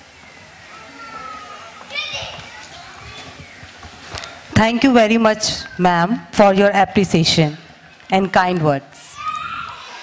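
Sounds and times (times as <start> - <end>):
child's high-pitched shout: 0.7 - 3.4, 9.1 - 10.0.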